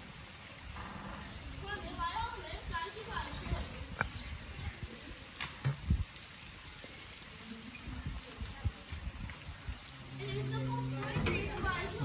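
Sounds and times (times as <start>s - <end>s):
light rain dripping on bricks: 0.0s - 12.0s.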